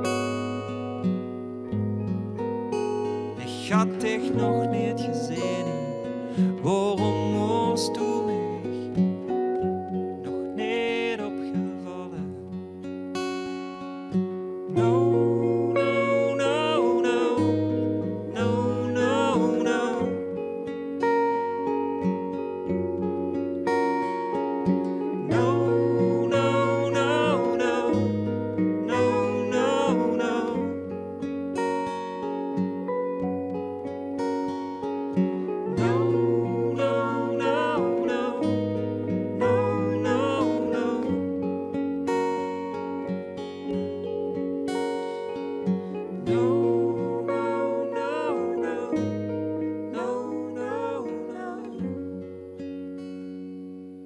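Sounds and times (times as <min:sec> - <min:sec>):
acoustic guitar chords: 0:00.0 - 0:54.0.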